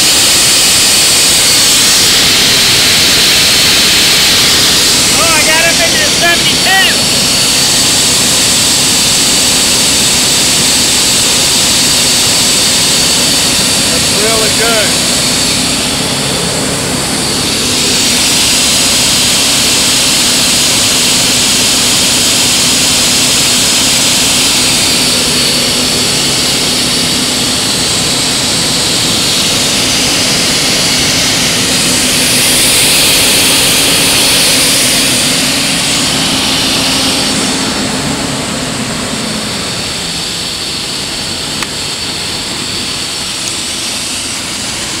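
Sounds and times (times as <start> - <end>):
high-pressure water jet hissing: 0.0 - 45.0
water pump humming: 0.0 - 45.0.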